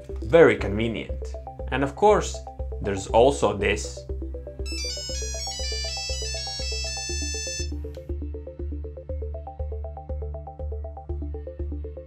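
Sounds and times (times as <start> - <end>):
background music with steady beat: 0.0 - 12.0
mobile phone beeping ringtone: 4.6 - 7.9.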